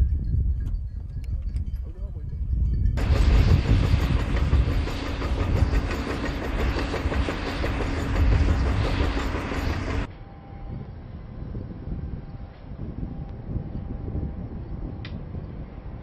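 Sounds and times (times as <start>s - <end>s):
heavy machinery rumbling: 3.0s - 10.1s.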